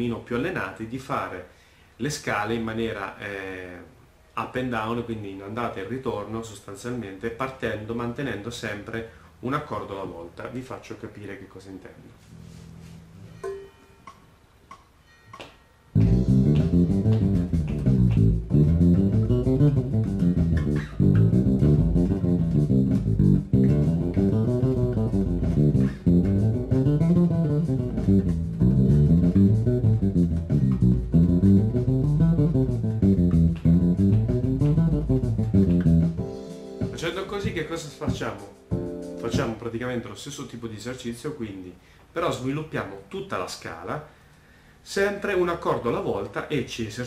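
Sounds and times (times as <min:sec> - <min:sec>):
electric bass playing scales: 0:12.2 - 0:13.5, 0:15.9 - 0:39.5
looping backing track: 0:12.3 - 0:40.2.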